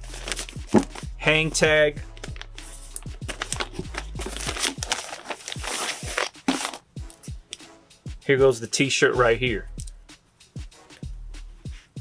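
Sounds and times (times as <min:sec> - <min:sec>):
plastic bag crinkling: 0:00.0 - 0:01.0, 0:03.2 - 0:06.8
quiet background music: 0:00.0 - 0:12.0.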